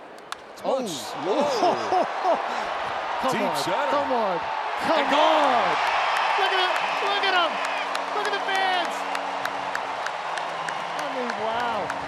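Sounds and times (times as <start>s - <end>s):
stadium crowd cheering: 0.7s - 12.0s
hands clapping sharply: 5.8s - 12.0s.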